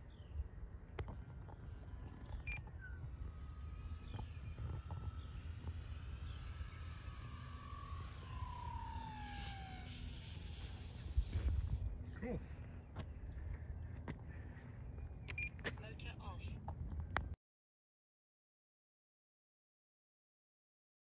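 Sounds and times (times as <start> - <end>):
model plane motor whine: 0.0 - 12.1
wind rumbling on microphone: 0.0 - 15.6.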